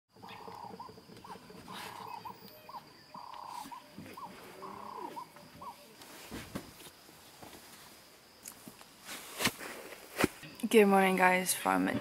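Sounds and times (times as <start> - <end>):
wild animal trilled calls: 0.1 - 6.0
high insect tone: 0.1 - 12.0.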